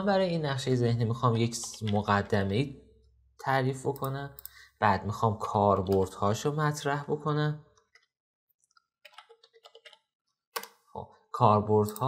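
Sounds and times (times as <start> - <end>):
keyboard typing: 9.0 - 10.8.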